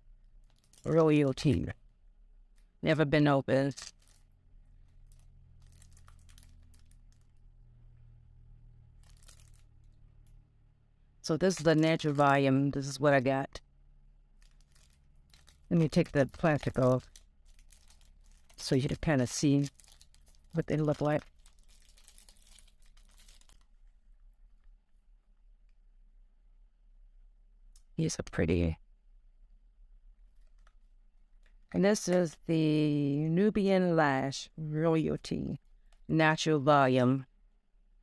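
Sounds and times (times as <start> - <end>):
low room hum: 0.0 - 38.0
packaging crinkling and rustling: 0.4 - 1.7, 3.8 - 7.4, 8.9 - 10.4, 11.3 - 12.4, 14.3 - 24.7.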